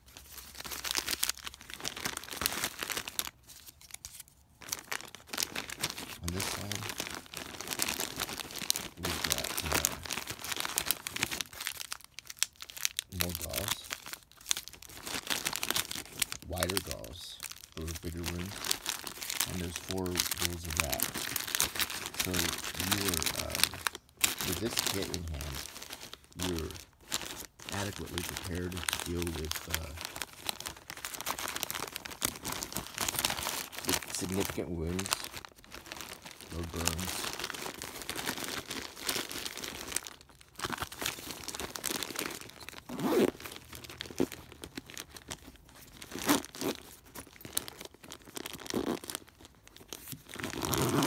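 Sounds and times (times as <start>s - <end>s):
plastic wrappers crinkling: 0.0s - 51.0s.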